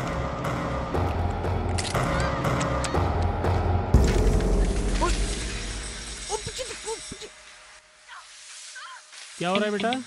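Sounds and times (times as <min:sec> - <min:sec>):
low pulsing film score: 0:00.0 - 0:08.1.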